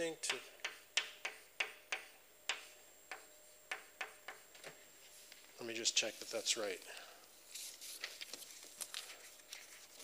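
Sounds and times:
chalk tapping on blackboard: 0:00.2 - 0:04.5.

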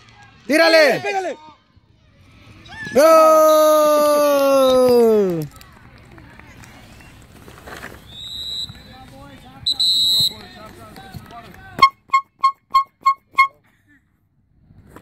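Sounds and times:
referee's whistle blasts: 0:08.2 - 0:09.0, 0:09.6 - 0:10.5, 0:11.8 - 0:13.6.

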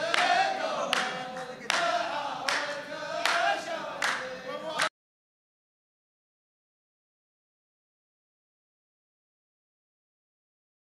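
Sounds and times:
group hand claps: 0:00.0 - 0:04.9
men chanting in unison: 0:00.0 - 0:04.9.

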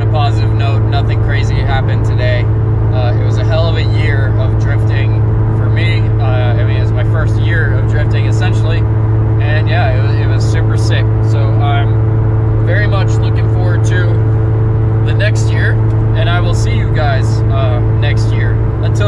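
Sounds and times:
man talking: 0:00.0 - 0:12.0, 0:12.6 - 0:14.3, 0:15.0 - 0:19.0
car engine and road noise: 0:00.0 - 0:19.0.

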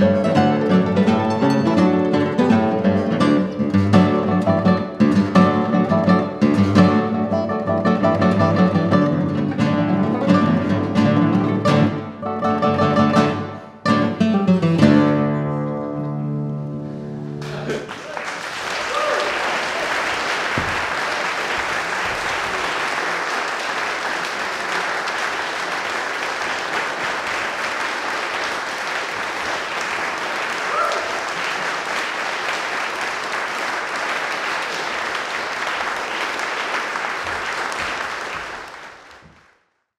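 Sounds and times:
classical guitar chord: 0:00.0 - 0:17.4
audience applauding: 0:17.4 - 0:39.8.

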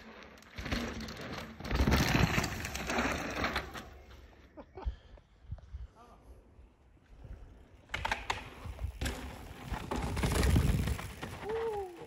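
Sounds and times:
bike tyres rolling on rock: 0:00.0 - 0:04.3, 0:07.2 - 0:12.0.

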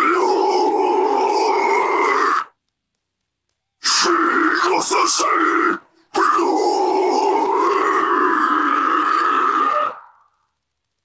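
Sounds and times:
harsh screamed vocal note: 0:00.0 - 0:02.6, 0:03.8 - 0:10.4.

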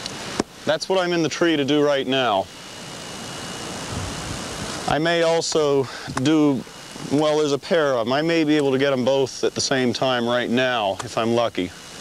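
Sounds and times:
wireless microphone hiss: 0:00.0 - 0:12.0
low-pitched noise: 0:03.1 - 0:09.9.

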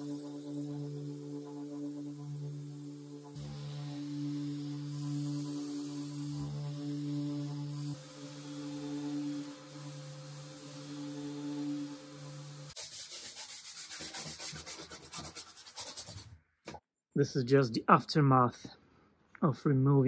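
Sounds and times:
dust extractor hiss: 0:00.0 - 0:12.8
orbital sander motor hum: 0:00.0 - 0:12.9
cloth rubbing on wood: 0:12.7 - 0:16.3.

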